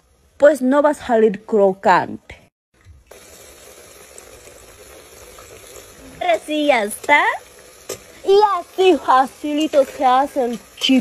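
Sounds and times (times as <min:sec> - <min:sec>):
oil sizzling and bubbling: 0:00.0 - 0:01.9, 0:02.7 - 0:11.0.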